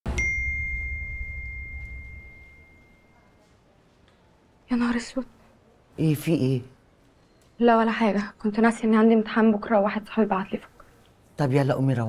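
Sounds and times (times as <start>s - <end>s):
phone notification ding: 0.1s - 3.1s.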